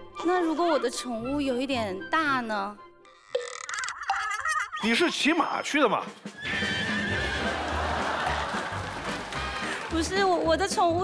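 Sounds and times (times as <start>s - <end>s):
background music: 0.0s - 3.6s, 4.8s - 11.0s
horse neighing: 6.3s - 7.5s.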